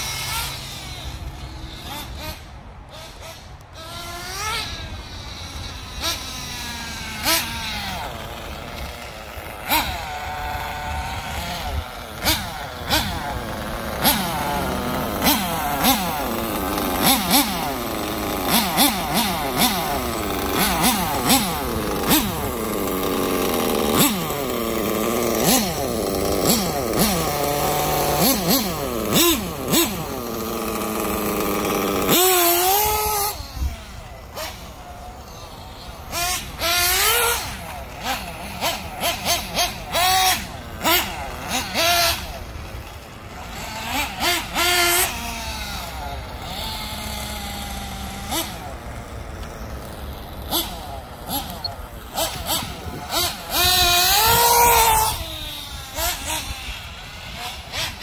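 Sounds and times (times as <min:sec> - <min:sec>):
small engine revving: 0:00.0 - 0:58.0.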